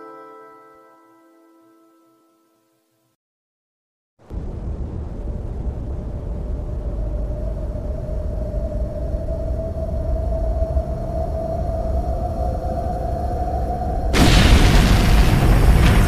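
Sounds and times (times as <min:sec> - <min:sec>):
deep noisy rumble: 0:04.3 - 0:16.0.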